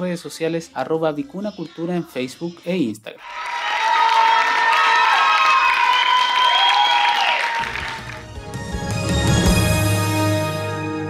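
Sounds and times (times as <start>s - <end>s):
audience applauding and cheering: 3.2s - 9.5s
music playing: 7.2s - 11.0s.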